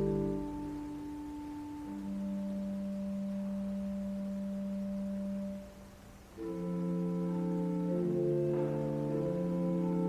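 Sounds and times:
pipe organ sustained notes: 0.0s - 10.0s.

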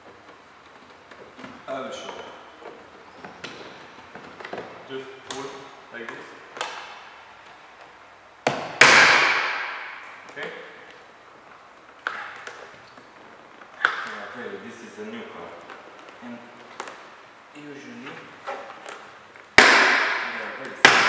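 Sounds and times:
loud sharp ringing bang: 8.7s - 10.2s, 19.6s - 21.0s.

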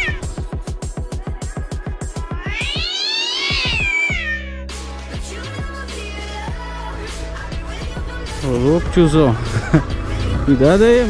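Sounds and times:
cat meowing: 0.0s - 0.4s, 2.2s - 4.7s.

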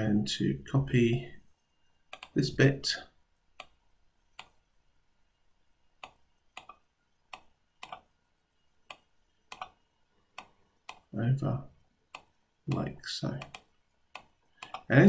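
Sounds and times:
computer mouse clicking: 2.1s - 2.4s, 3.6s - 4.6s, 6.0s - 8.1s, 8.8s - 11.1s, 12.1s - 14.9s.

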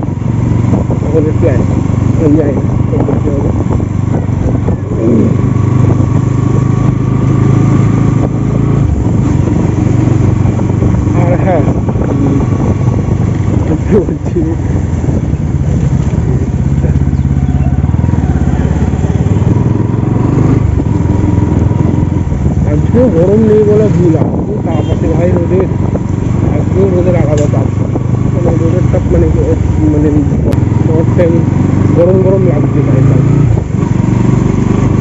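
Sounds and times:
motorcycle engine running: 0.0s - 35.0s
road and wind noise: 0.0s - 35.0s.

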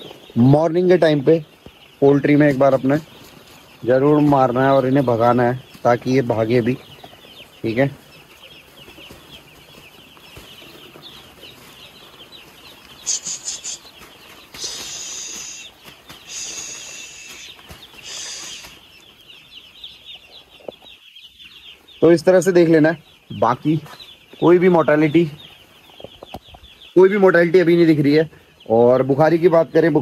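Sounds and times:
shrill drawn-out chick calls: 0.0s - 27.1s
chicks peeping: 0.0s - 30.0s.

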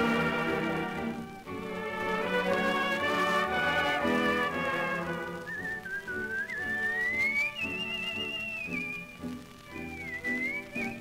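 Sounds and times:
person whistling a rising note: 5.2s - 11.0s.

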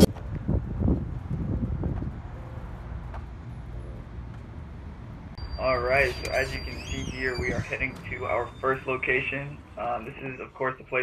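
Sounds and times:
wind rumbling on microphone: 0.0s - 3.2s, 6.1s - 8.5s.

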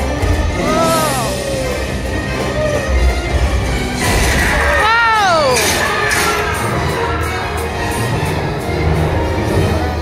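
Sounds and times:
loud ride soundtrack: 0.0s - 10.0s
high voice crying out: 0.6s - 1.4s.

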